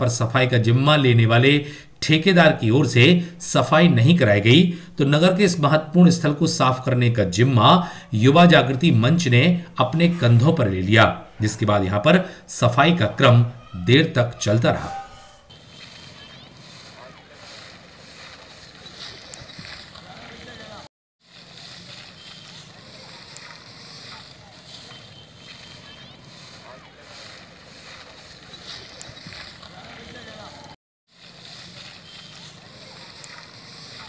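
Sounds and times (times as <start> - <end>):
outdoor background noise: 0.0 - 34.0
faint voices: 8.2 - 34.0.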